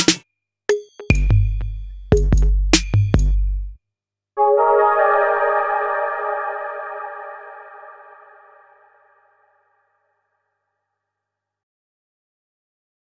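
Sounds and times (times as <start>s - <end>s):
sustained synthesizer chord: 4.4s - 9.6s.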